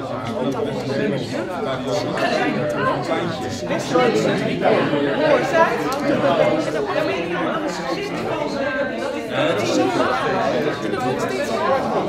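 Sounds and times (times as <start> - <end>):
hubbub of voices: 0.0 - 12.0.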